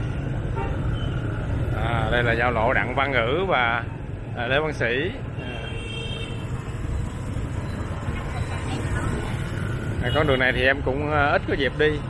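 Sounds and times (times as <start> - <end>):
low engine rumble of traffic: 0.0 - 12.0.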